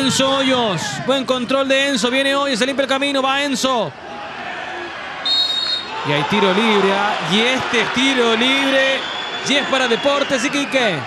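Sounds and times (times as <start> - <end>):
murmur of stadium crowd: 0.0 - 11.0
referee's whistle blast: 5.3 - 6.0.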